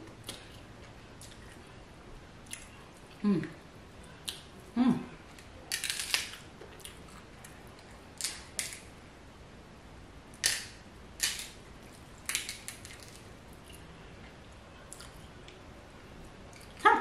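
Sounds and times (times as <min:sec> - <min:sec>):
shellfish shell crackling: 0:05.7 - 0:06.5, 0:12.2 - 0:13.3.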